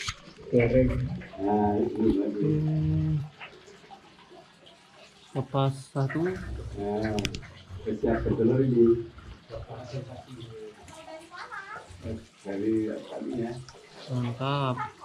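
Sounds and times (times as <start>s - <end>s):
people talking indistinctly: 0.0s - 3.7s, 5.4s - 15.0s.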